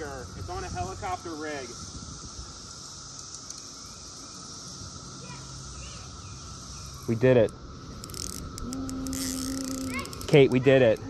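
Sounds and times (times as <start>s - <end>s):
faint high hiss: 0.0s - 11.0s
person humming low note: 8.6s - 9.9s.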